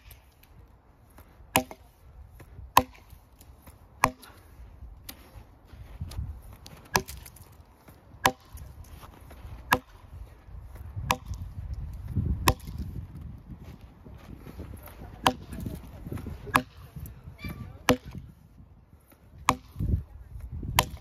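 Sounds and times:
axe chopping log: 0:01.2 - 0:04.5, 0:06.6 - 0:07.5, 0:08.1 - 0:08.9, 0:09.6 - 0:10.1, 0:11.0 - 0:11.6, 0:12.2 - 0:12.9, 0:15.2 - 0:15.8, 0:16.4 - 0:17.1, 0:17.8 - 0:18.3, 0:19.4 - 0:20.0, 0:20.6 - 0:21.0.

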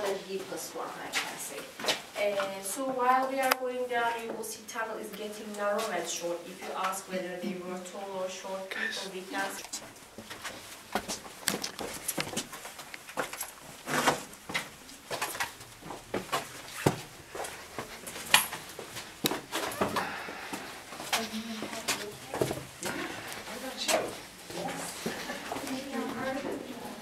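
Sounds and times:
indistinct voices: 0:19.8 - 0:27.0.

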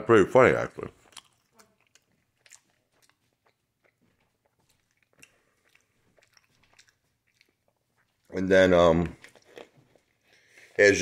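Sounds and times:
person chewing food: 0:00.7 - 0:11.0.

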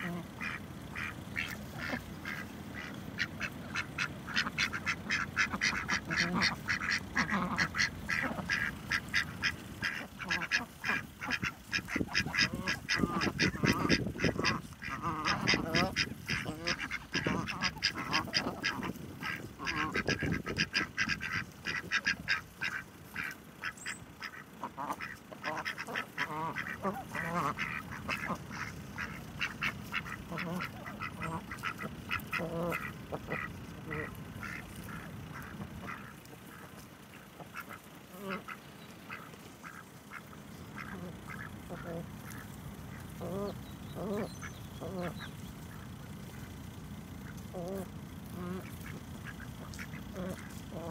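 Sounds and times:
ducks quacking: 0:00.0 - 0:50.9.

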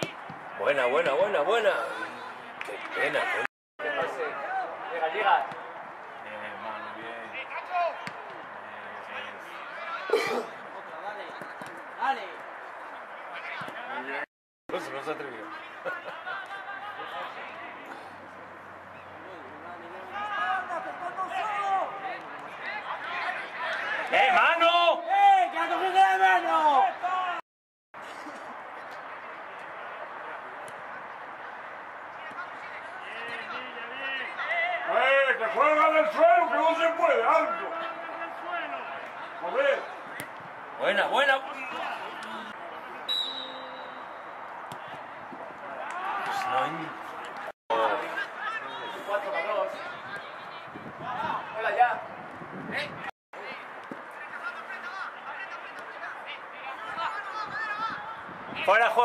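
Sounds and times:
open-air background noise: 0:00.0 - 0:27.4, 0:28.0 - 0:59.0
people shouting and calling: 0:20.0 - 0:27.4, 0:45.6 - 0:52.0
murmur of voices: 0:28.0 - 0:59.0.

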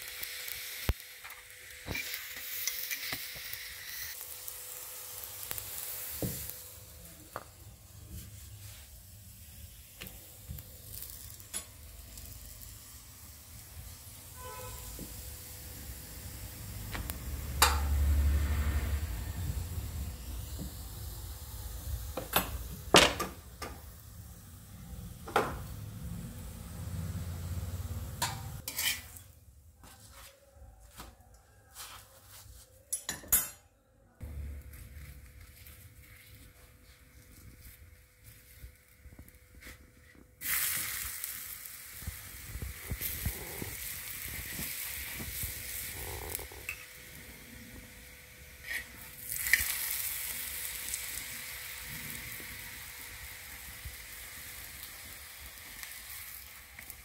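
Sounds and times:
flatbread sizzling in a pan: 0:00.0 - 0:29.4, 0:34.2 - 0:57.0
metal utensils clinking on pan: 0:28.2 - 0:29.2.

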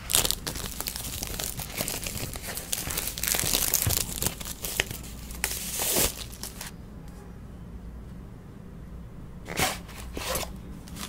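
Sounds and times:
plastic shrink wrap crinkling: 0:00.0 - 0:06.7.

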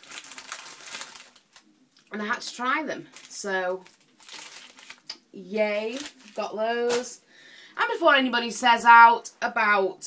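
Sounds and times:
plastic wrapper crinkling: 0:00.0 - 0:07.2.

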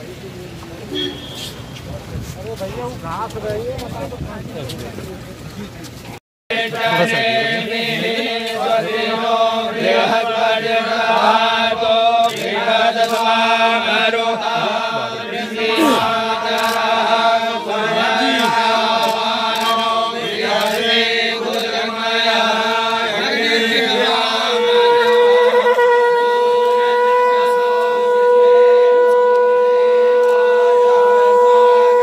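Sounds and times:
men chanting together: 0:06.5 - 0:24.7.

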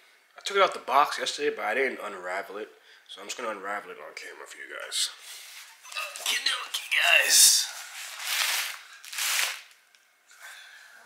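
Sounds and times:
bubble wrap crinkling: 0:07.8 - 0:09.8.

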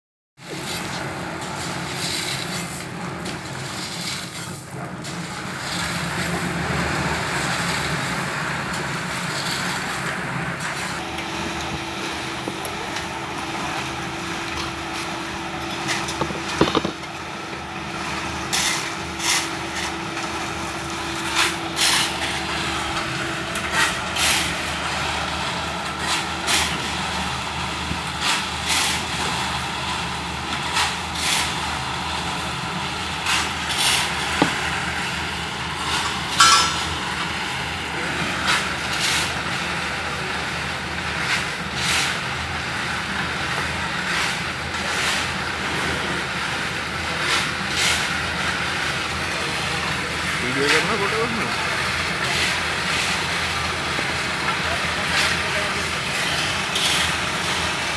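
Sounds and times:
concrete mixer engine hum: 0:00.4 - 0:57.9
shovels scraping into gravel: 0:18.3 - 0:27.2, 0:28.0 - 0:29.9, 0:33.2 - 0:34.8, 0:54.6 - 0:57.9.

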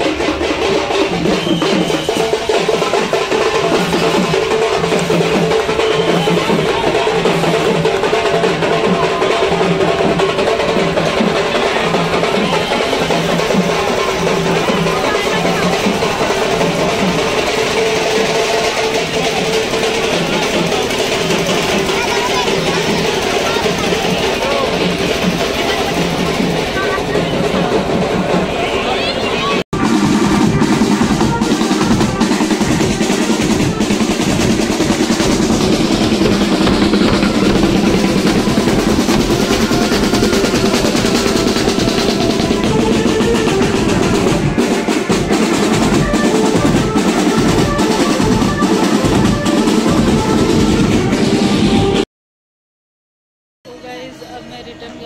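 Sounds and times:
crowd voices: 0:00.0 - 0:52.0
marching band drums beating: 0:00.0 - 0:52.0
procession music: 0:28.5 - 0:52.0.

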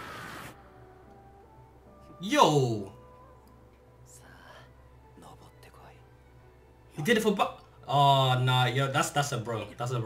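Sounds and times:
soft-spoken voice dialogue: 0:04.1 - 0:06.1, 0:06.9 - 0:10.0.

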